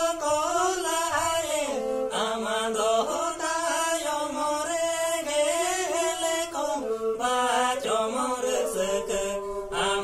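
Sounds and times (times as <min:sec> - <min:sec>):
two men singing a folk song: 0:00.0 - 0:10.0.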